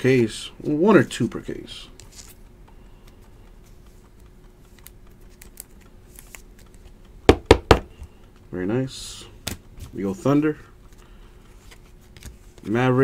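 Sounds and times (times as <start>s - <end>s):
sharp knocks: 7.3s - 7.9s.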